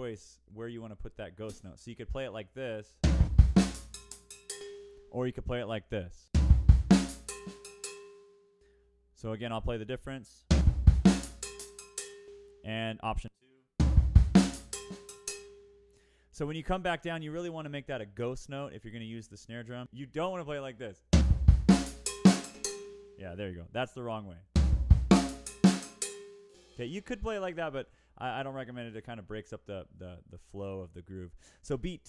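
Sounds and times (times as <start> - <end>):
drum kit with cowbell: 3.0 - 5.1, 6.4 - 8.4, 10.5 - 12.6, 13.8 - 15.7, 21.2 - 23.2, 24.6 - 27.4.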